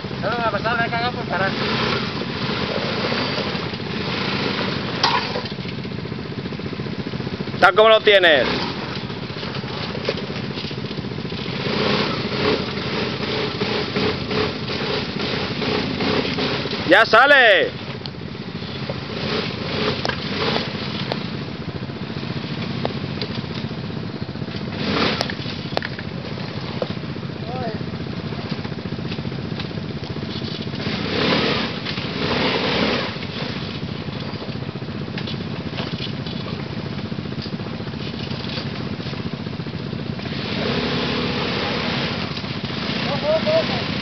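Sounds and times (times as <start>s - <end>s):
quad bike engine at low speed: 0.0s - 44.0s.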